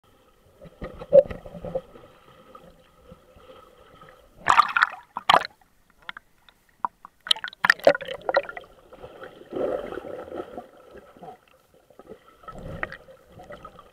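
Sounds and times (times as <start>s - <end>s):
faint steady hum: 0.1s - 13.9s
water splashing and bubbling: 0.6s - 13.9s.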